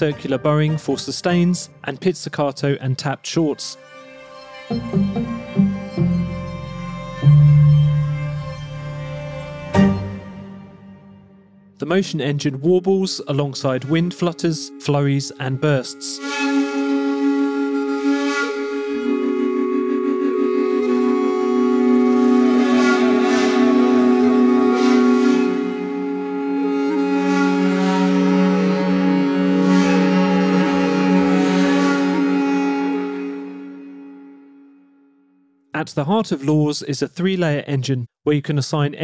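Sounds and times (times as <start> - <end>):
woodwind ensemble sustained chord: 13.2 - 35.2.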